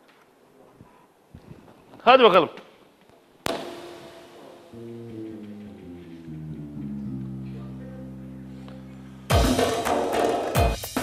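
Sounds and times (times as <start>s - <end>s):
sharp ringing strike: 3.5s - 6.2s
folk band instruments playing: 3.5s - 10.3s.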